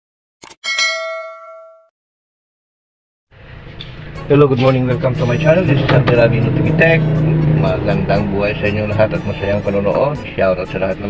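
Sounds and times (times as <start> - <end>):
bell-like ding: 0.6 - 1.9.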